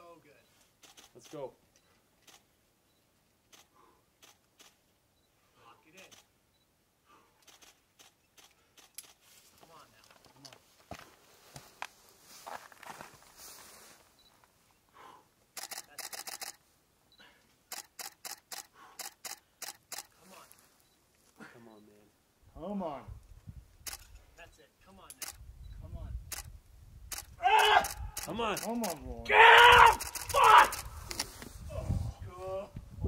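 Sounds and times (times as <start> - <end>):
faint sharp clicks: 7.4 - 9.2.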